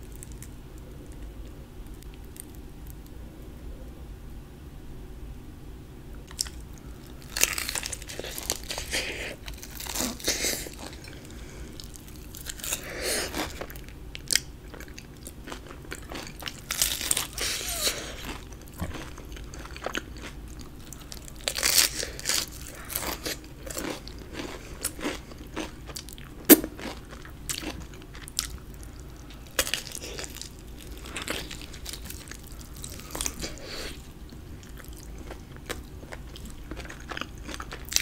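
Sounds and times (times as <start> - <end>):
crunching and chewing fried chicken: 0.0 - 3.2, 6.2 - 38.0.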